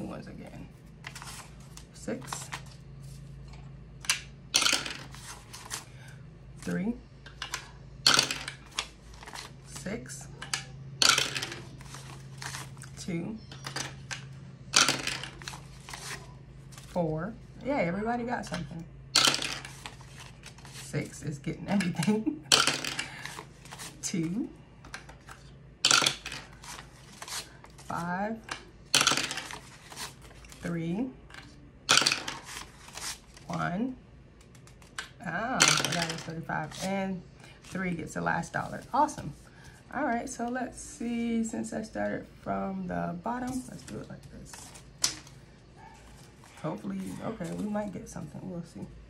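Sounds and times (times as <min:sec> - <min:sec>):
paper bills handled: 0:00.8 - 0:03.3, 0:08.6 - 0:10.4, 0:11.5 - 0:12.9, 0:15.0 - 0:17.0, 0:19.6 - 0:21.0, 0:26.3 - 0:28.0, 0:29.4 - 0:30.6, 0:32.2 - 0:33.5
die clattering down dice tower: 0:11.0 - 0:11.6, 0:19.2 - 0:19.7, 0:22.5 - 0:23.1, 0:25.8 - 0:26.5, 0:28.9 - 0:29.5, 0:31.9 - 0:32.4, 0:35.6 - 0:36.3.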